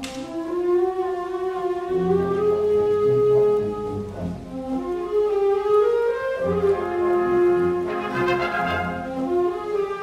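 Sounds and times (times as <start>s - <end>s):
low brass chords: 6.3s - 10.0s.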